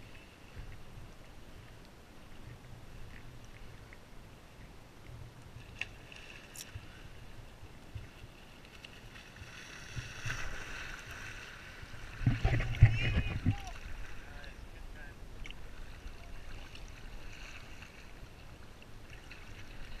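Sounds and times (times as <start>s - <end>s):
seawater lapping and sloshing: 0.0s - 14.6s, 15.4s - 20.0s
water splash and gurgle: 0.0s - 14.6s, 15.4s - 20.0s.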